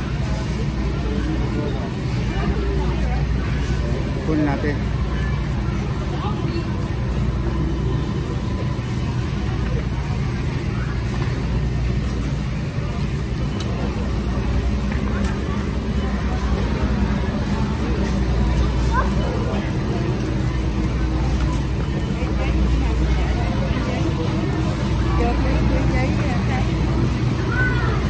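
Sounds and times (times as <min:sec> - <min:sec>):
faint voices of shoppers: 0:00.0 - 0:28.0
low machinery hum: 0:00.0 - 0:28.0.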